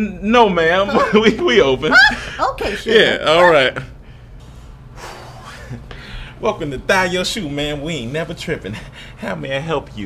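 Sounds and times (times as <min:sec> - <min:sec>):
low room hum: 0:00.0 - 0:10.0
person breathing: 0:04.0 - 0:06.4, 0:08.7 - 0:09.2.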